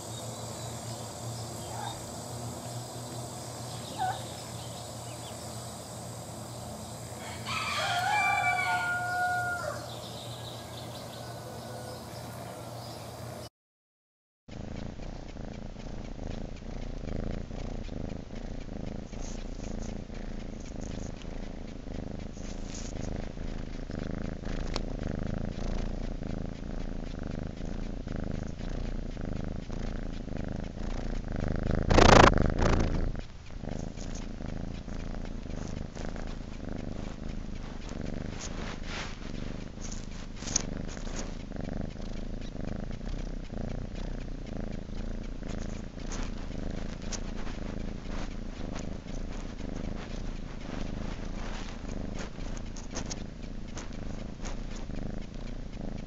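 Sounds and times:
cat purring: 0:00.0 - 0:13.5, 0:14.5 - 0:56.0
steady low hum: 0:00.0 - 0:13.5, 0:14.5 - 0:56.0
rooster crowing: 0:07.1 - 0:12.6.

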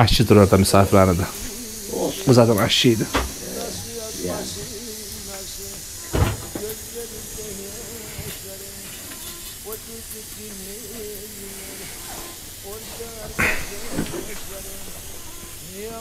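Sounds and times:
kettle steaming hiss: 0:00.0 - 0:16.0
wavering low hum: 0:00.5 - 0:16.0
single knock: 0:03.1 - 0:03.4.

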